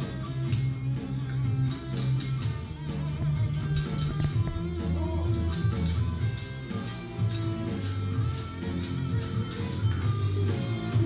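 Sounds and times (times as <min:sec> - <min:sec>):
electric guitar melody: 0:00.0 - 0:11.0
low bass notes: 0:02.4 - 0:07.3.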